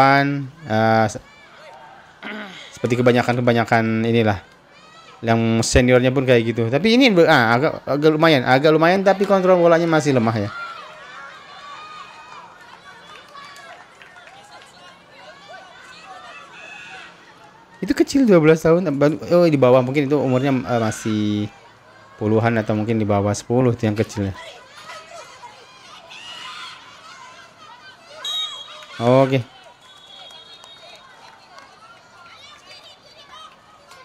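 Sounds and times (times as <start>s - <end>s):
children shouting: 4.3s - 5.3s, 8.6s - 18.0s, 19.6s - 23.1s, 24.0s - 34.0s
referee's whistle blast: 28.2s - 29.0s, 29.8s - 31.0s.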